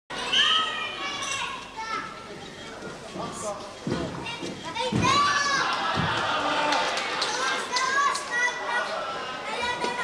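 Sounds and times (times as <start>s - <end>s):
children shouting: 0.1s - 2.0s, 4.9s - 10.0s.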